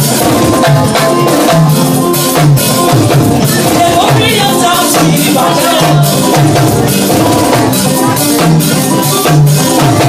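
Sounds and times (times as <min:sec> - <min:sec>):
drum kit playing: 0:00.0 - 0:10.0
keyboard playing: 0:00.0 - 0:10.0.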